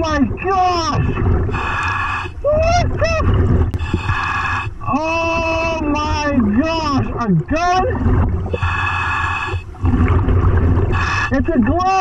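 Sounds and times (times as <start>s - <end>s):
underwater low rumble: 0.0s - 11.9s
breath through scuba regulator: 8.5s - 9.8s.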